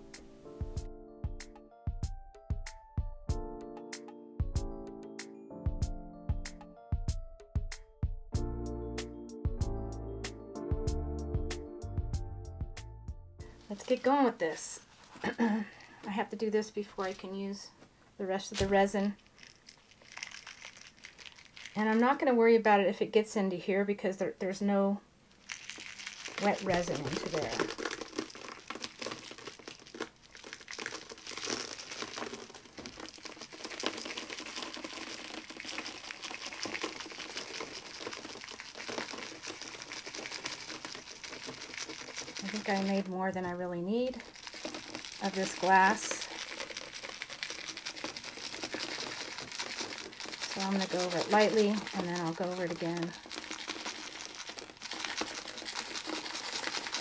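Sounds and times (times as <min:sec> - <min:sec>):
crushed glass trickling: 0:18.6 - 0:22.2, 0:25.3 - 0:57.0.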